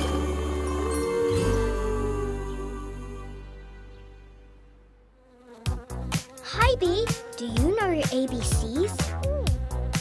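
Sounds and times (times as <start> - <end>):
soft music: 0.0 - 10.0
cartoon bee buzzing: 5.2 - 10.0.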